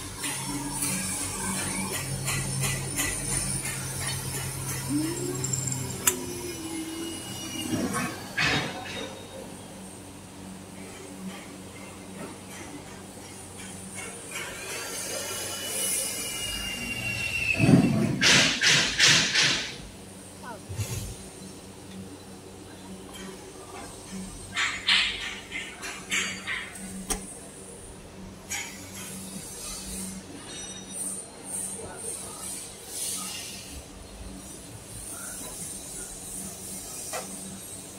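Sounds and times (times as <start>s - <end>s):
machinery humming: 0.0s - 11.9s
high squeal: 15.4s - 17.7s.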